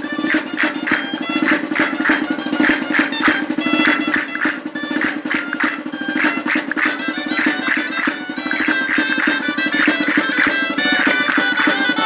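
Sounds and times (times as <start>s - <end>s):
shawms playing folk tune: 0.0s - 12.0s
castanets clicking: 0.2s - 11.8s.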